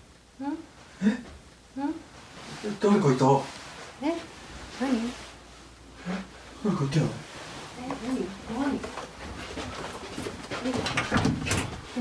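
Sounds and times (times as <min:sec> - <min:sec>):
rustles: 0:00.8 - 0:12.0.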